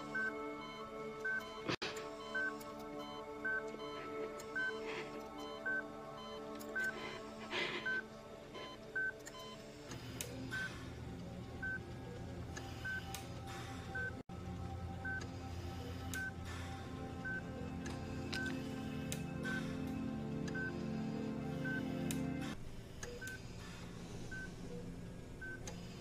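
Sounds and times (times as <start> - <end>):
patient monitor beeping: 0.0 - 26.0
soft background music: 0.0 - 26.0.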